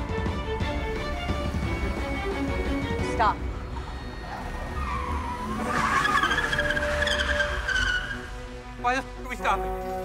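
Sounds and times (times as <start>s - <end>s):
car tyres squealing: 3.8s - 8.5s.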